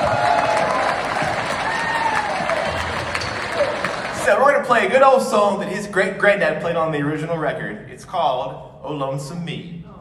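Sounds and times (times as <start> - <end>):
audience applauding: 0.0 - 4.6.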